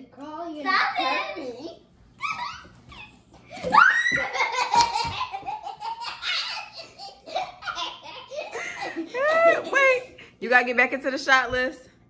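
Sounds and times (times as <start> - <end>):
girls laughing: 2.2 - 10.1.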